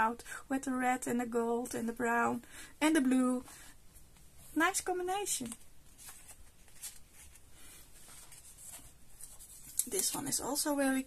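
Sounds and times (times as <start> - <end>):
paper pages rustling: 5.3 - 10.8.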